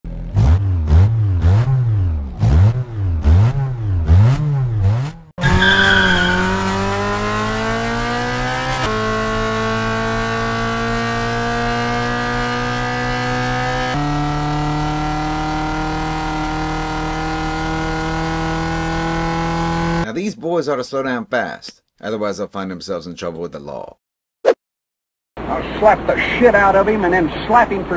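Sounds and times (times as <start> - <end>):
car engine revving: 0.1 - 20.0
tire squeal: 5.4 - 7.1.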